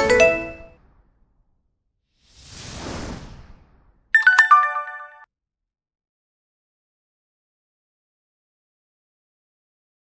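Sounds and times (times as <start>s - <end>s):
whoosh: 0.6s - 4.1s
bright chime with clicks: 4.2s - 5.3s.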